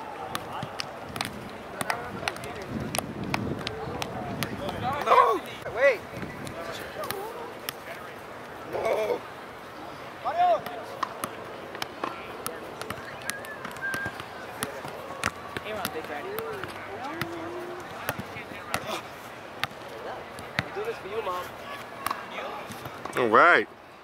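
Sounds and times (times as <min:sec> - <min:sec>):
soccer ball taps: 0:00.3 - 0:05.2, 0:10.6 - 0:18.9
players calling out: 0:03.6 - 0:22.9.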